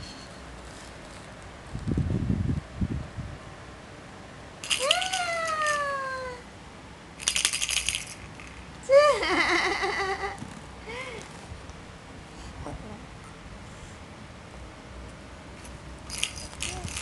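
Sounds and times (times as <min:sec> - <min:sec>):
rattle toy jingling: 0:04.6 - 0:05.8, 0:07.2 - 0:08.6, 0:16.1 - 0:17.0.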